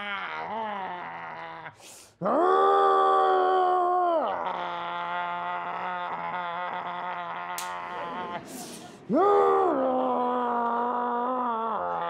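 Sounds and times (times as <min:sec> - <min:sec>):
man growling: 0:04.0 - 0:12.0
sharp breath: 0:08.4 - 0:09.1.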